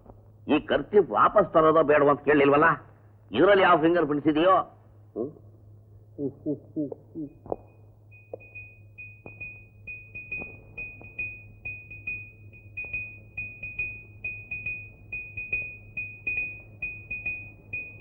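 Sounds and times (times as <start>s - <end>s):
low soundtrack hum: 0.0s - 18.0s
high pulsing electronic tone: 7.2s - 18.0s.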